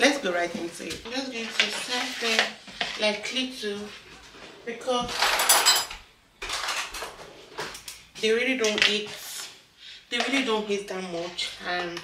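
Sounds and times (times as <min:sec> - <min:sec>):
cutlery clattering in a drawer: 0:05.1 - 0:07.1.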